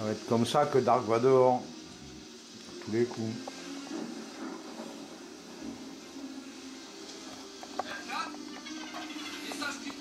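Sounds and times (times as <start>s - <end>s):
television soundtrack noise: 0.0s - 10.0s.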